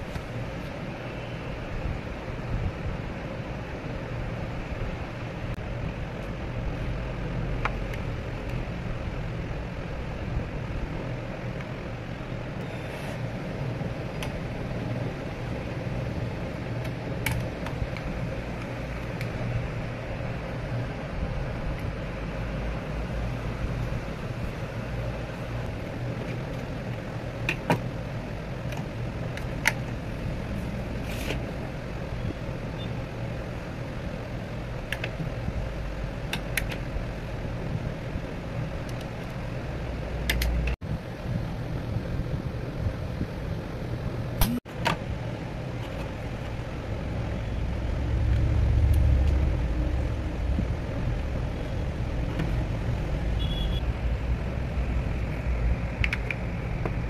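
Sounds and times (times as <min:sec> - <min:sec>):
low background hum: 0:00.0 - 0:57.0.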